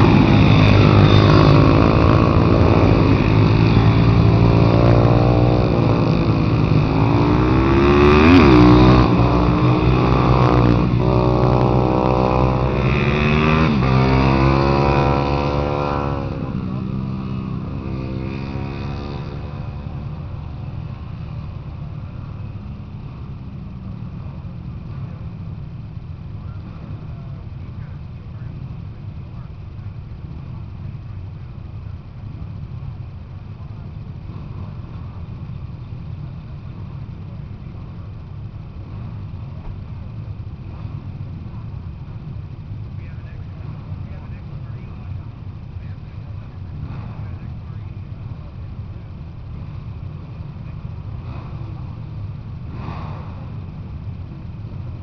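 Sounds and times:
faint distant voices: 0.0s - 55.0s
steady low rumble: 0.0s - 55.0s.

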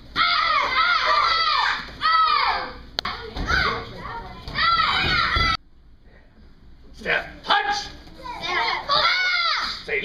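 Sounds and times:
children calling out and chattering: 0.1s - 5.6s, 8.0s - 9.9s.

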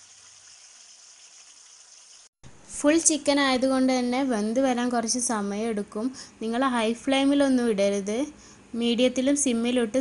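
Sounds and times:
oil sizzling in a pan: 0.0s - 2.3s.

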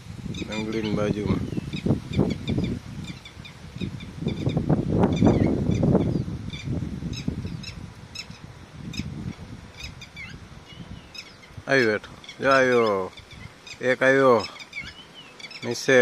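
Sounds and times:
lapwings calling: 0.3s - 16.0s.

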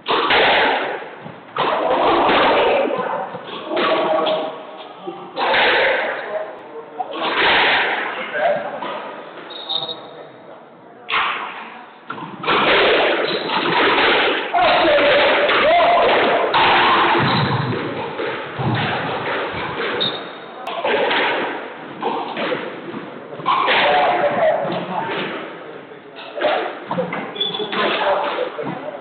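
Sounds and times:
people talking: 1.6s - 12.1s, 14.5s - 21.1s, 22.9s - 29.0s.

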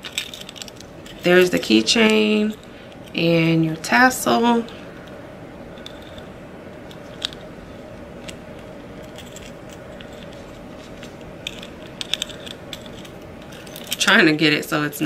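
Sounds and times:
metal keychain clinking: 0.0s - 3.2s, 5.6s - 14.2s
steady room hum: 0.0s - 15.0s.

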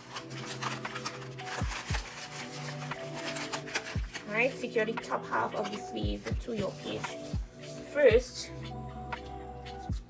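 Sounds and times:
paper rustling and crinkling: 0.0s - 7.9s
background music held notes: 0.0s - 10.0s.

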